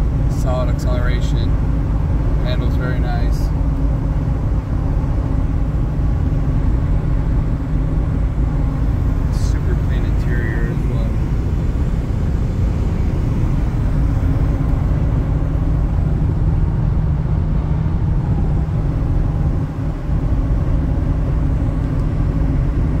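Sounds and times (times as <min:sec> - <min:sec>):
car engine drone: 0:00.0 - 0:23.0.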